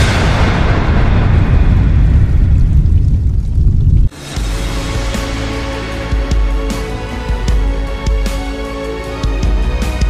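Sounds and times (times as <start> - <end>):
explosion-like rumble: 0.0 - 7.7
music with held notes: 4.2 - 10.0.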